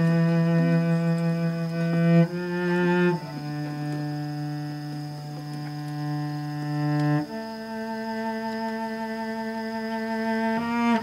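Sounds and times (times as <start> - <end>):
cello bowing low note: 0.0 - 11.0.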